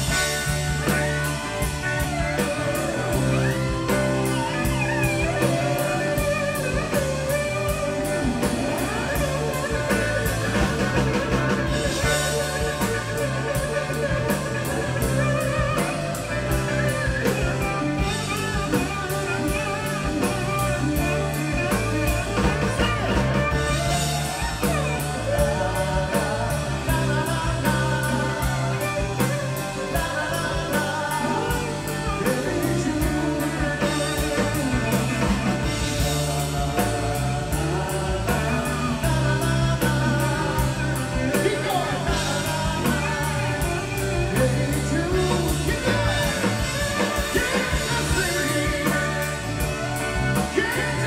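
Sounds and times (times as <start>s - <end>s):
bass: 0.0s - 51.0s
drum kit with cymbals: 0.0s - 51.0s
electric guitar lead: 0.0s - 51.0s
keyboard chords: 0.0s - 51.0s.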